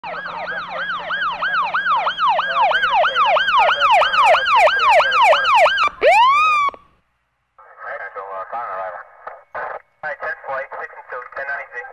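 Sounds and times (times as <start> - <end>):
police siren yelp and wail: 0.0 - 6.9.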